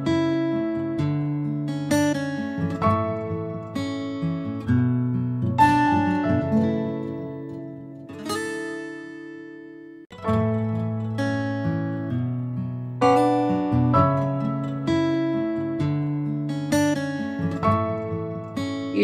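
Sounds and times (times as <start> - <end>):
acoustic guitar music: 0.0 - 19.0.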